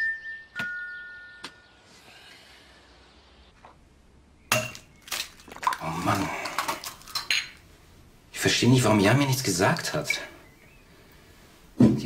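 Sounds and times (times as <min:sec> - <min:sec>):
glass and crockery clinking: 0:04.5 - 0:04.9, 0:05.5 - 0:07.6.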